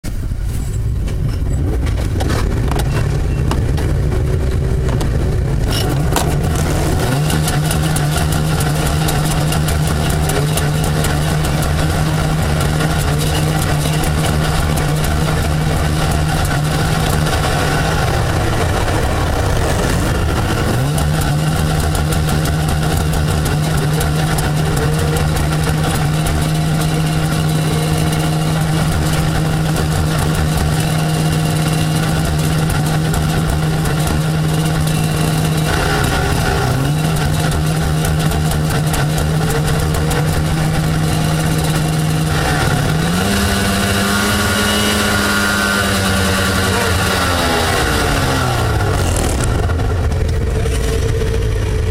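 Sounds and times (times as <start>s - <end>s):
snowmobile engines idling: 0.1s - 51.9s.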